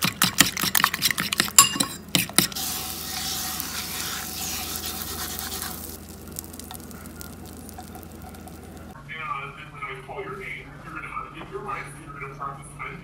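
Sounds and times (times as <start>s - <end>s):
butter sizzling in hot pan: 2.4s - 9.0s
low hum: 2.8s - 9.0s.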